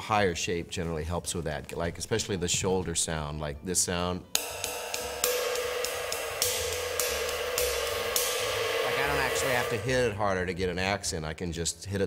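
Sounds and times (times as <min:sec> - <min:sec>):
ride cymbal struck with drumstick: 0:04.3 - 0:10.4.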